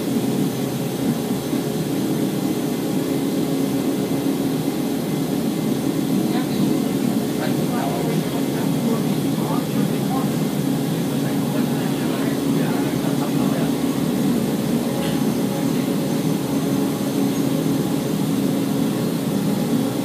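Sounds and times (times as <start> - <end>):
electric train running drone: 0.0 - 20.0.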